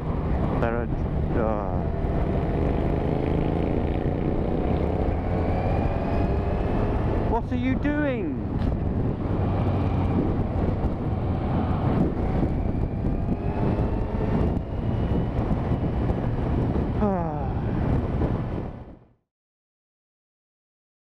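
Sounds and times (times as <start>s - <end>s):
motorcycle engine at speed: 0.0s - 19.1s
wind rush on microphone: 0.0s - 19.2s.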